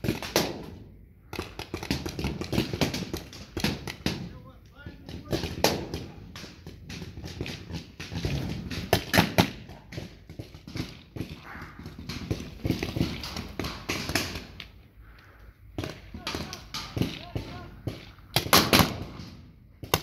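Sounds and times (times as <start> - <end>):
paintball markers firing: 0.0 - 14.7, 15.8 - 20.0.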